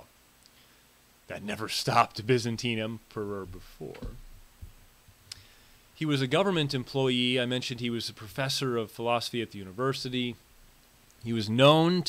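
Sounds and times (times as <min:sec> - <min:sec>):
soft low thud: 0:03.4 - 0:04.8.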